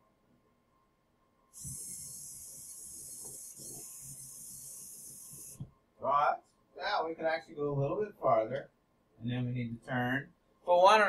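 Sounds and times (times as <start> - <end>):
robot wheel servos whirring: 1.6 - 5.6.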